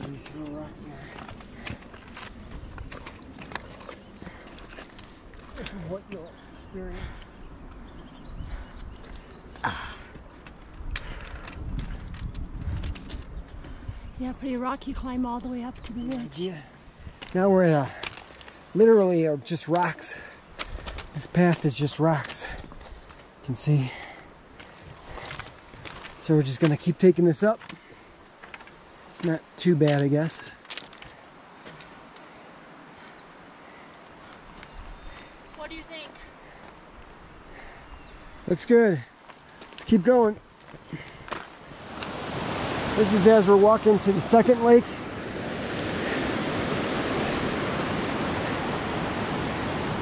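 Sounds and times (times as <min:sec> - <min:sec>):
boots on rocky trail: 0:00.0 - 0:06.4, 0:08.5 - 0:13.7, 0:17.1 - 0:18.8, 0:19.7 - 0:23.3, 0:23.9 - 0:32.3, 0:34.2 - 0:37.8, 0:39.2 - 0:42.8
faint outdoor hiss: 0:14.0 - 0:50.0.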